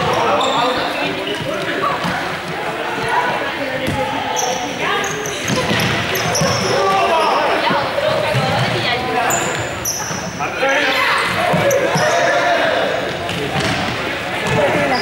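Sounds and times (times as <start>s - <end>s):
sneakers squeaking on gym floor: 0.0s - 15.0s
young people calling and chattering: 0.0s - 15.0s.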